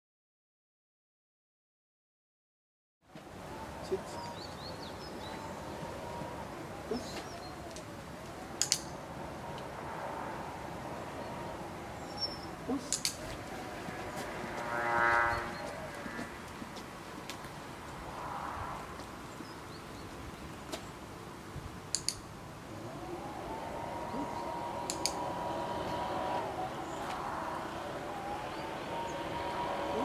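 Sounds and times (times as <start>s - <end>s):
dog-training clicker clicking: 8.6s - 8.9s, 12.8s - 13.2s, 21.9s - 22.2s
short pitched whine: 22.7s - 30.0s.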